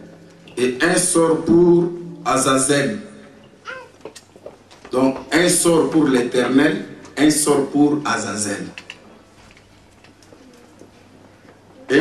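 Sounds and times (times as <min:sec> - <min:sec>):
man speaking amplified: 0:00.5 - 0:03.3, 0:04.9 - 0:08.8.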